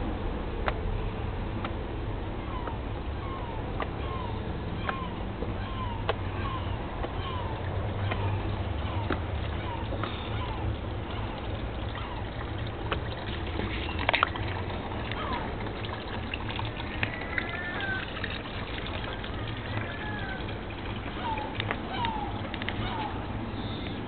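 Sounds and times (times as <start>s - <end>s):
steady low rumble: 0.0s - 24.0s.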